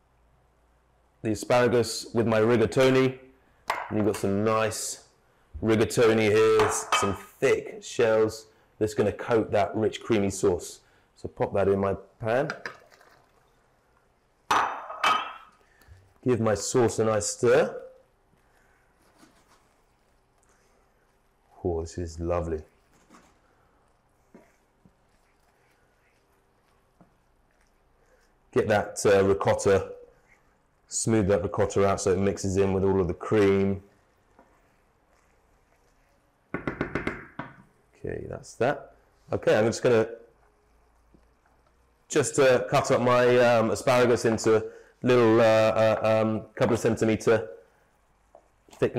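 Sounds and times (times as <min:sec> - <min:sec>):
kitchenware clanking: 0:06.6 - 0:07.2, 0:14.5 - 0:15.6.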